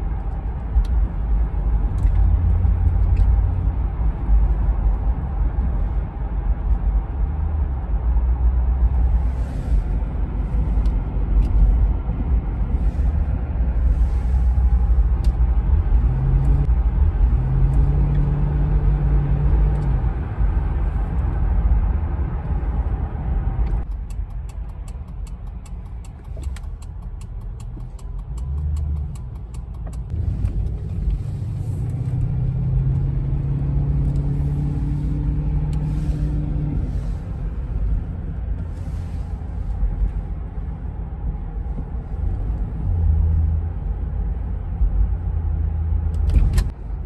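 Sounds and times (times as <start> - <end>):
car engine and road rumble: 0.0 - 47.0.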